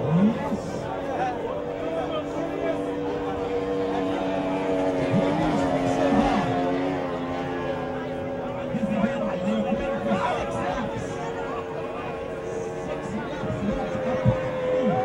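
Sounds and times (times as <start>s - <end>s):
people chattering: 0.0s - 15.0s
powerboat engines running: 0.0s - 15.0s.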